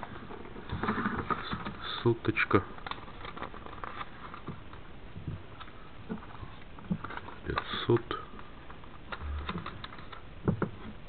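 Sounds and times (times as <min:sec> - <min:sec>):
banknote rustling in plastic sleeve: 0:02.4 - 0:04.9.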